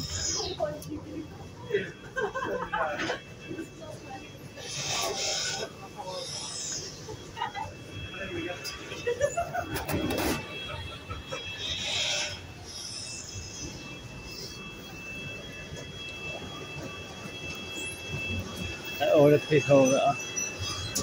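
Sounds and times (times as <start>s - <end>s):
chatter of passengers: 0.0s - 21.0s
faint high whine: 0.0s - 21.0s.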